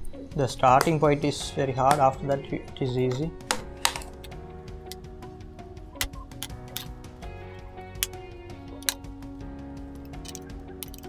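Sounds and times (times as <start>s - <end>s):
background music: 0.0s - 11.0s
plastic clips snapping: 3.1s - 5.0s, 8.0s - 8.2s, 8.8s - 9.1s.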